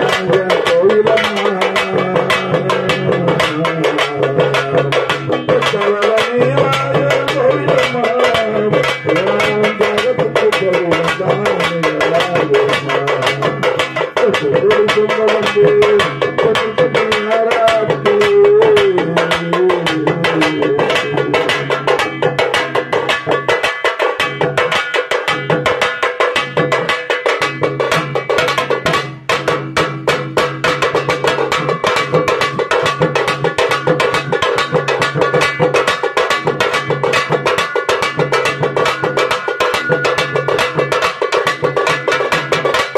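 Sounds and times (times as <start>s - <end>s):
barrel drum: 0.0s - 42.9s
frame drum beaten with stick: 0.0s - 42.9s.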